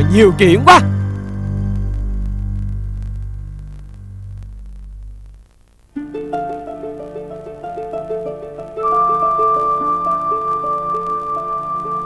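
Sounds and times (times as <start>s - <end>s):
low droning background music: 0.0s - 5.0s.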